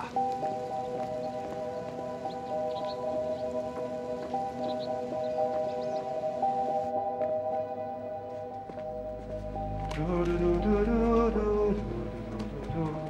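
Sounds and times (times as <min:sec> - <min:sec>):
slow held-note background music: 0:00.0 - 0:13.0.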